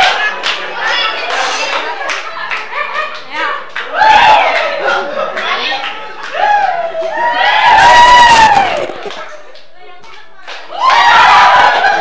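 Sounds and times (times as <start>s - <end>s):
people clapping along: 0.0s - 12.0s.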